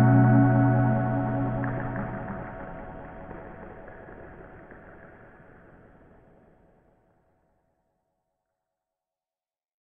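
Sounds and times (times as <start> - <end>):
low noisy synth drone: 0.0 - 3.9.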